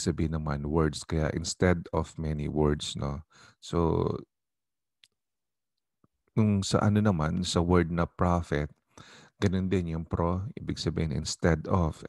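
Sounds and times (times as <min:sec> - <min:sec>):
man speaking: 0:00.0 - 0:04.3, 0:06.4 - 0:08.7, 0:09.4 - 0:12.0.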